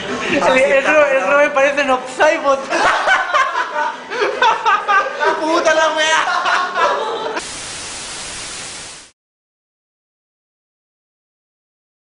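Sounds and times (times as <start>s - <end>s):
tv static hiss: 7.4s - 9.2s.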